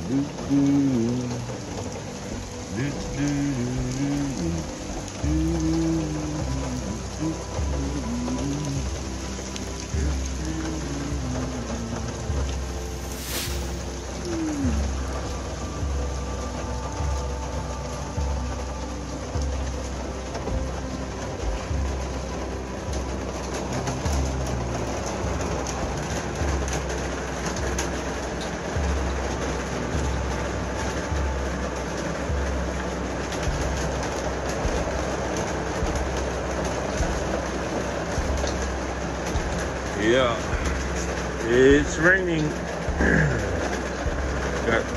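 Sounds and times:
soft piano music: 0:00.0 - 0:44.9
steady rain falling: 0:00.0 - 0:44.9.

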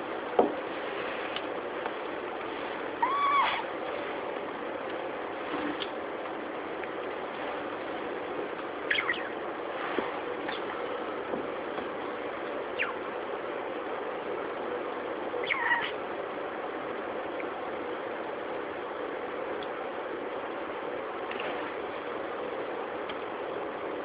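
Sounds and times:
steady background hiss: 0:00.0 - 0:24.0
budgie chirping: 0:08.8 - 0:09.4, 0:12.7 - 0:13.1, 0:15.4 - 0:16.0.

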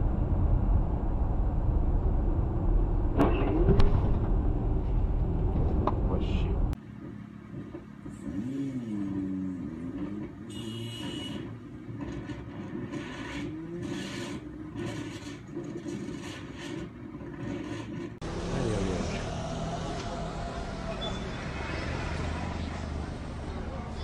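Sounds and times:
road noise rushing: 0:00.0 - 0:24.0
motorcycle engine revving: 0:08.1 - 0:24.0.

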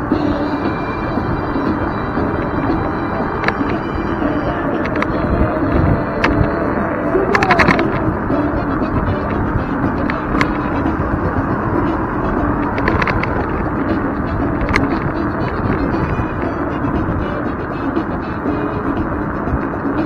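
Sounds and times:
scooter rattling over bumps: 0:00.0 - 0:20.0
scooter road rumble: 0:00.0 - 0:20.0
wind noise: 0:00.0 - 0:20.0.

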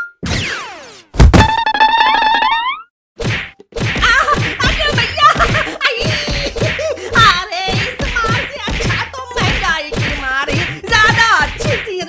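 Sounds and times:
cartoon whack: 0:00.2 - 0:01.8, 0:03.2 - 0:12.0.

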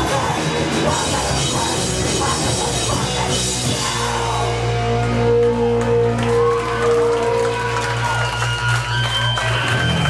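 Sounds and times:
punk band playing live: 0:00.0 - 0:10.0.

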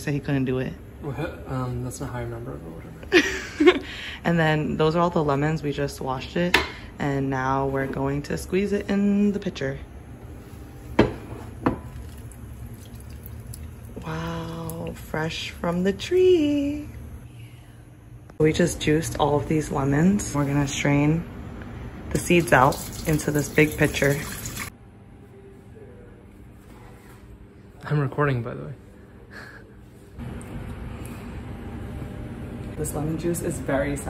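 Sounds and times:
juice dripping into glass: 0:11.9 - 0:14.9.

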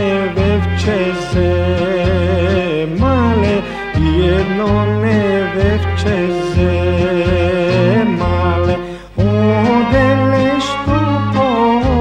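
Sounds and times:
instrumental folk accompaniment: 0:00.0 - 0:12.0
person singing ornamented notes: 0:00.0 - 0:12.0.

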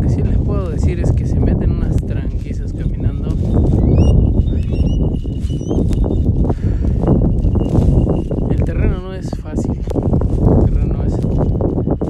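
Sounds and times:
wind rumbling on microphone: 0:00.0 - 0:12.0
bird chirps: 0:03.4 - 0:06.3.

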